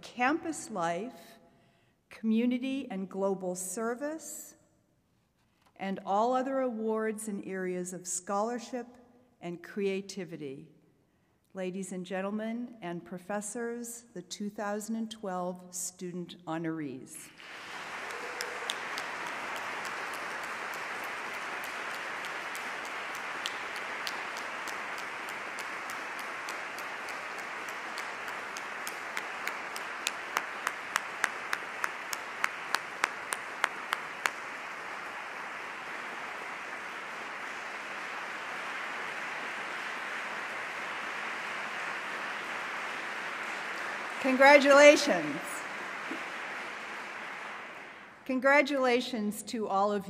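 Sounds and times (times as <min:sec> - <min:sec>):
hands clapping close: 0:17.4 - 0:44.3, 0:45.0 - 0:48.1
audience applauding: 0:17.4 - 0:48.2.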